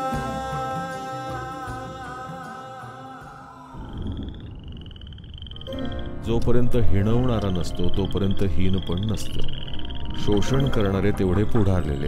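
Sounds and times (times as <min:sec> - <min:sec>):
frog trilling: 0:03.7 - 0:06.2, 0:07.5 - 0:12.0.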